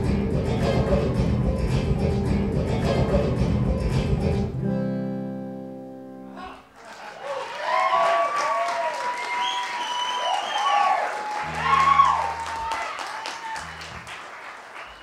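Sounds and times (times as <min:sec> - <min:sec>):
audience applauding and cheering: 0:06.8 - 0:15.0
whoops: 0:07.2 - 0:14.0.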